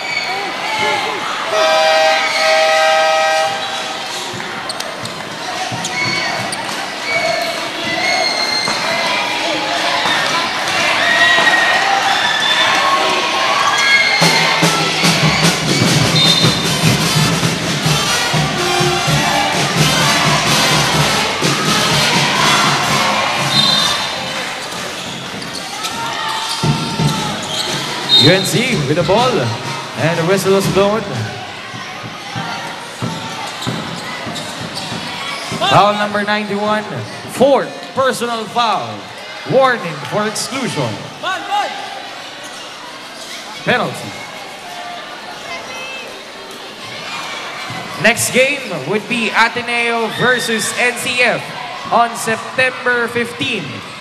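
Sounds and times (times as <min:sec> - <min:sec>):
crowd noise: 0:00.0 - 0:54.0.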